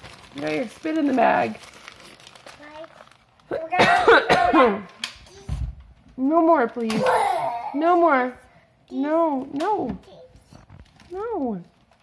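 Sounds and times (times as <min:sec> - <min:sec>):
child vocalising high-pitched: 0:07.0 - 0:07.8.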